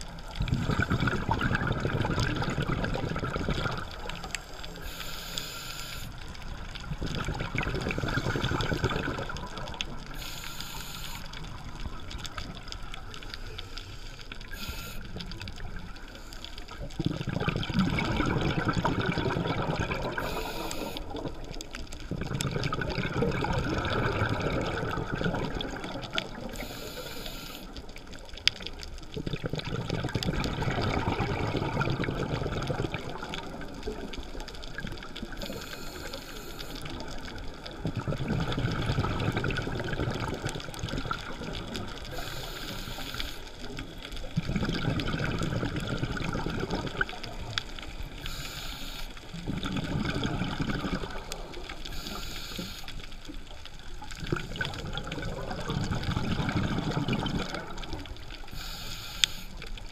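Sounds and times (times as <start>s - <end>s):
bubbles gurgling underwater: 0.0s - 5.0s, 6.2s - 13.7s, 14.3s - 48.5s, 49.2s - 58.7s
regulator inhalation hiss: 4.3s - 6.2s, 10.1s - 11.4s, 13.6s - 15.2s, 20.2s - 21.2s, 26.5s - 27.7s, 35.4s - 37.0s, 42.1s - 43.6s, 48.2s - 49.4s, 51.9s - 53.1s, 58.4s - 59.6s.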